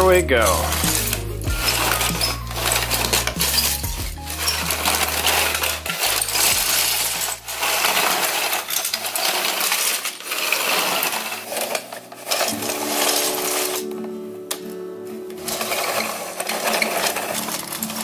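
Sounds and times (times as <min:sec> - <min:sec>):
music tones: 0:00.0 - 0:08.0, 0:12.0 - 0:18.0
plastic bricks clattering: 0:00.0 - 0:13.9, 0:15.3 - 0:18.0.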